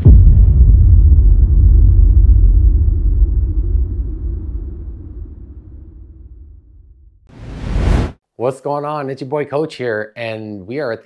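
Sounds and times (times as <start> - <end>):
deep low boom rumble: 0.0 - 8.1.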